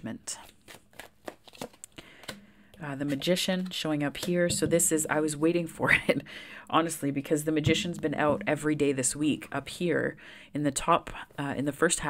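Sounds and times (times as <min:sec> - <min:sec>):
cards being shuffled: 0:00.4 - 0:02.4, 0:03.0 - 0:04.4
person speaking: 0:02.8 - 0:12.0.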